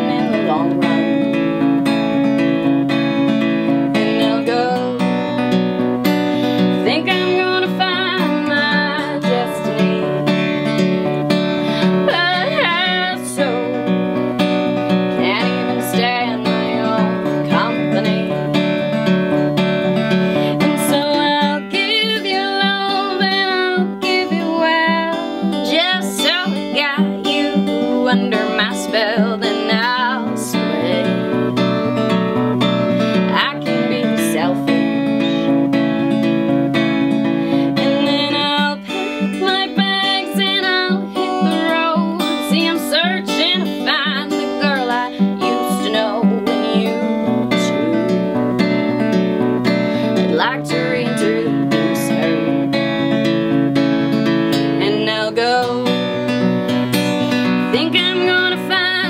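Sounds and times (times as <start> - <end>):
woman singing: 0.0 - 36.1, 36.8 - 53.4, 54.0 - 59.0
strummed acoustic guitar: 0.0 - 59.0.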